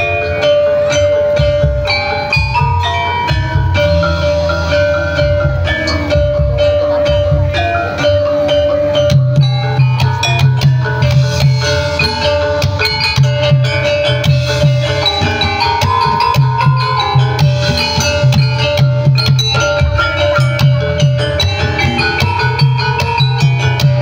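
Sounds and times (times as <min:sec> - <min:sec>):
pulsing drum beat: 0:00.0 - 0:24.0
ringing metallophone notes: 0:00.0 - 0:24.0.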